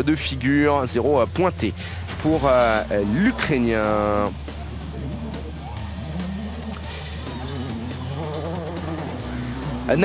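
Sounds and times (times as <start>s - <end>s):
background music: 0.0s - 10.0s
rally car engine driving by: 1.8s - 10.0s.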